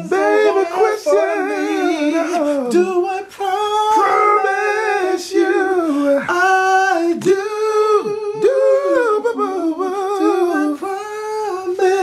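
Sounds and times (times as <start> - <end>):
man humming and singing: 0.0 - 12.0.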